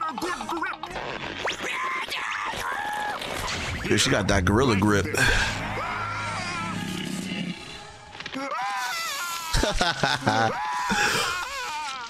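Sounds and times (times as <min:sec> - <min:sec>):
high wavering wailing cry: 0:05.6 - 0:07.2
laughter: 0:09.5 - 0:11.2.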